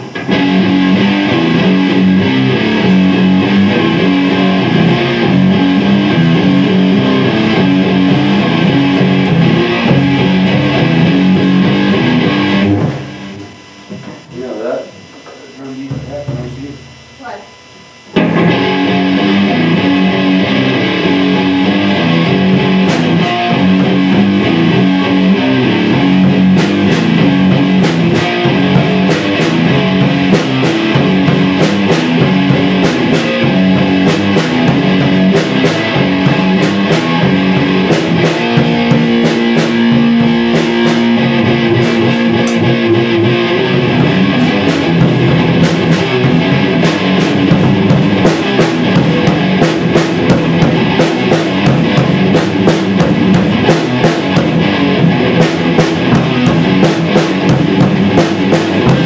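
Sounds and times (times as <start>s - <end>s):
loud electric guitar: 0.0s - 59.0s.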